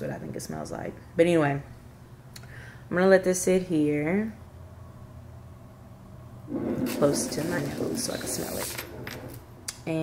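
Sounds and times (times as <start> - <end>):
woman speaking: 0.0 - 1.7, 2.9 - 4.4, 6.8 - 8.8, 9.8 - 10.0.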